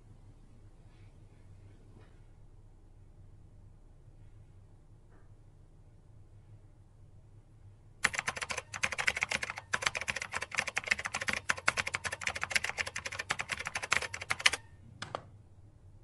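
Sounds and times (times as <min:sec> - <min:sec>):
fast typing on keyboard: 0:08.0 - 0:14.6.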